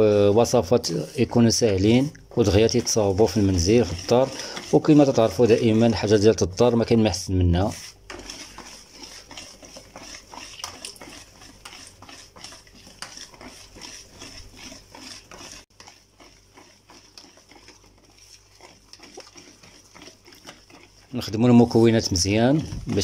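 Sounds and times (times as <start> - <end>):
whisk beating batter: 0.0 - 23.0
whisk clicking against bowl: 0.0 - 23.0.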